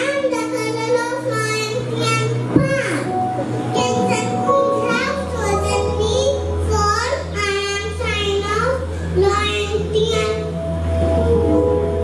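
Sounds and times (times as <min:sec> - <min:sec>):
backing music with bass: 0:00.0 - 0:12.0.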